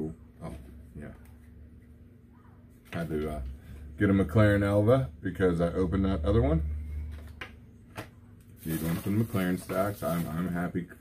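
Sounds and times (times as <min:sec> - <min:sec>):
steady low hum: 0:00.0 - 0:11.0
man speaking: 0:02.9 - 0:06.7.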